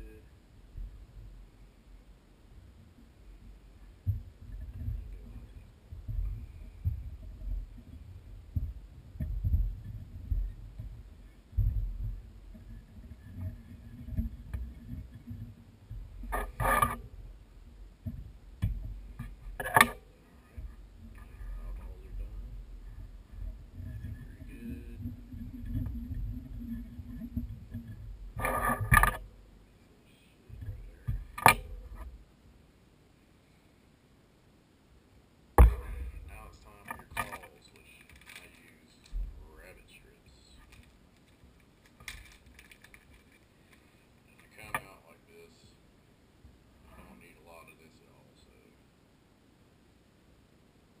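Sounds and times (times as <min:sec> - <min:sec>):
light fumbling handling noise: 0:35.6 - 0:39.6, 0:40.5 - 0:45.0.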